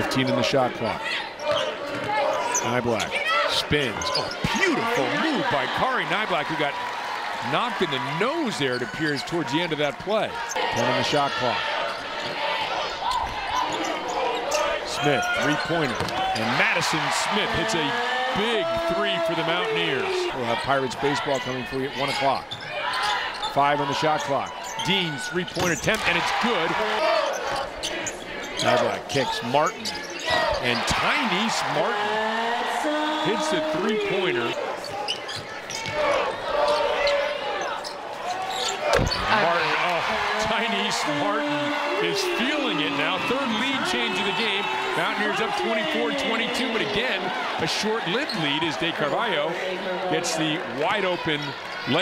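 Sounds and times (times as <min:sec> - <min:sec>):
arena crowd noise: 0:00.0 - 0:52.0
sneaker squeaks on court: 0:34.8 - 0:39.3.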